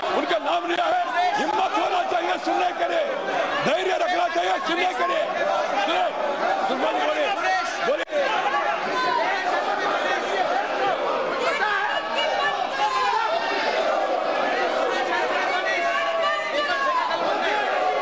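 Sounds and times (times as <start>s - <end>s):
many people shouting and talking: 0.0s - 18.0s.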